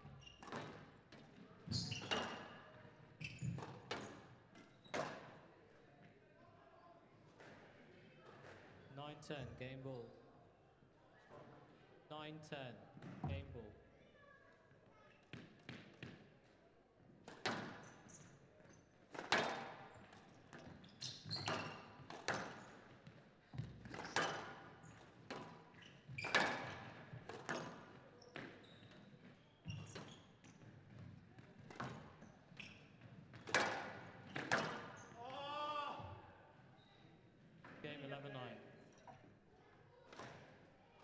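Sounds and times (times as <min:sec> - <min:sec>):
ball hitting walls echoing: 0:00.0 - 0:02.5, 0:17.2 - 0:18.3, 0:19.1 - 0:36.3
person speaking: 0:12.1 - 0:13.7.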